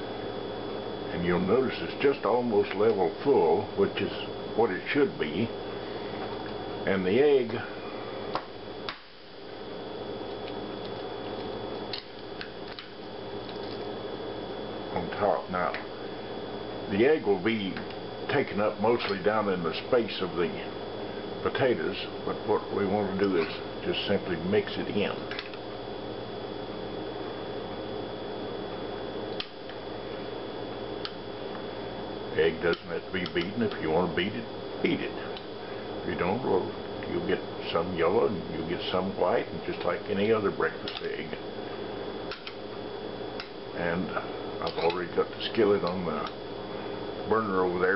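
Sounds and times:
background hum: 0.0 - 47.9.

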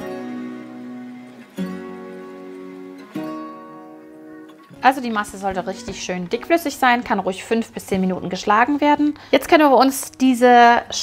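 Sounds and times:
acoustic guitar chords: 0.0 - 9.0.

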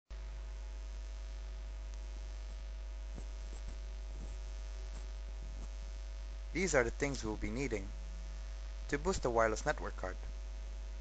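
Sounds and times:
low electrical hum: 0.1 - 11.0
faint ticks: 1.8 - 5.8.

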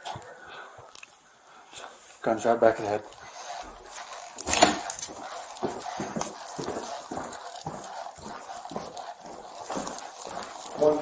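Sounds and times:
clothing and gear rustling: 1.8 - 11.0
footsteps: 1.8 - 11.0.

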